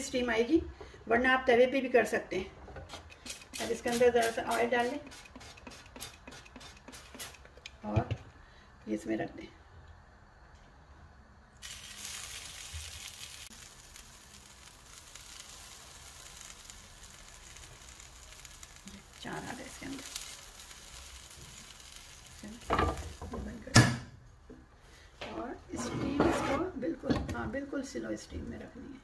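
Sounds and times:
oil sizzling in a grill pan: 11.6 - 23.8.

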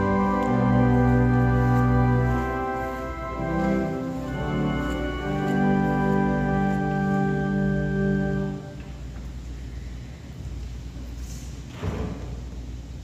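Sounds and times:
organ playing sustained chords: 0.0 - 9.8
low room noise: 0.0 - 13.0.

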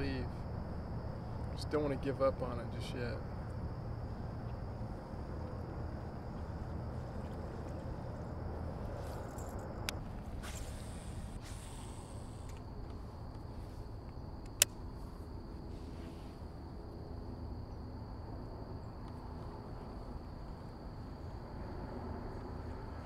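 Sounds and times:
faint high whine: 0.0 - 23.0
low steady rumble: 0.0 - 23.0.

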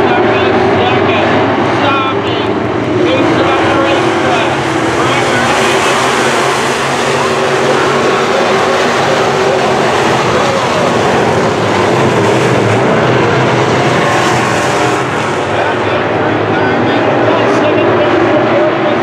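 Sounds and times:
race car engines running hard: 0.0 - 19.0.

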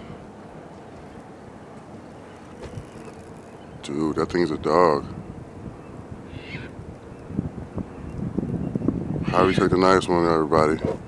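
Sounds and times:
wind buffeting microphone: 1.9 - 11.0.

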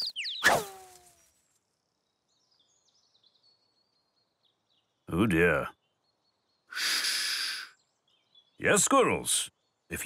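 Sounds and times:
faint high twittering: 0.0 - 10.0.

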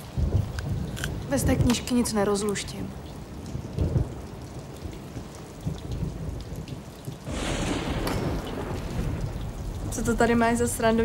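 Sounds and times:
steady rain: 0.0 - 11.0
thunder rumbling: 0.0 - 11.0.

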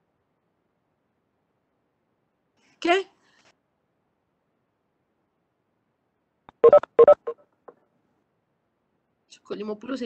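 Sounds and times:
short electronic chord beeps: 6.6 - 7.4.

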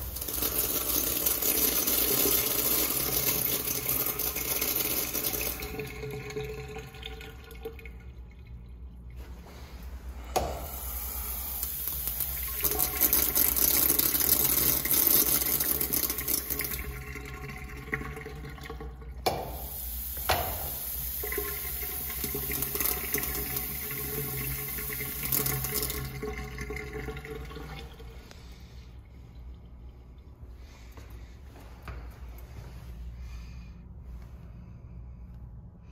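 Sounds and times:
urinal flushing: 0.0 - 32.7.

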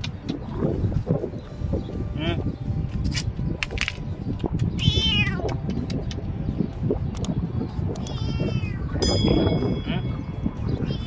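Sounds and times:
cat meowing: 4.8 - 5.5, 8.0 - 9.0.

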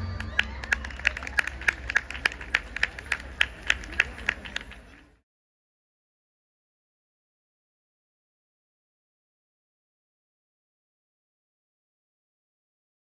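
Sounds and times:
loud person clapping: 0.0 - 5.0
audience applauding: 0.0 - 5.2
crowd voices: 0.0 - 5.2.

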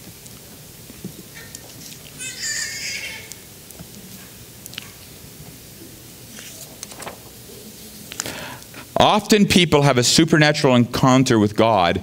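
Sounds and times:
high-pitched squeak: 2.2 - 3.4
papers rustling: 6.3 - 7.5.

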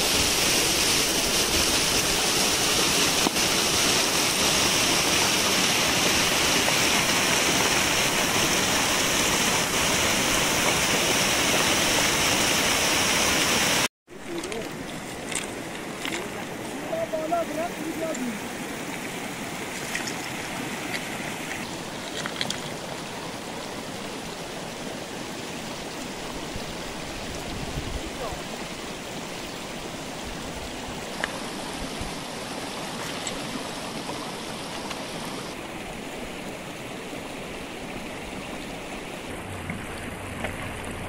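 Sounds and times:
falling rain: 0.0 - 41.0
runoff water rushing over gravel: 0.0 - 41.0.

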